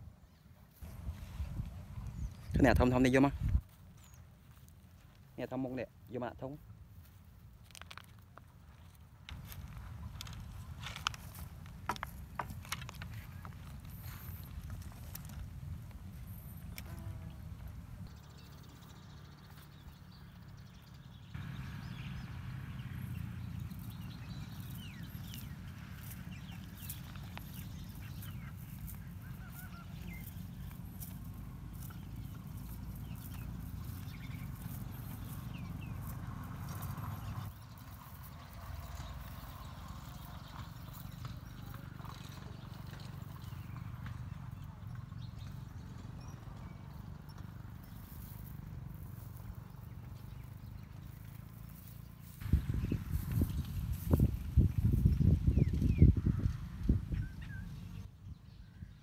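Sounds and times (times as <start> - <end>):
steady low rumble: 0.8 - 4.2, 52.3 - 58.1
faint bird calls: 23.1 - 36.1.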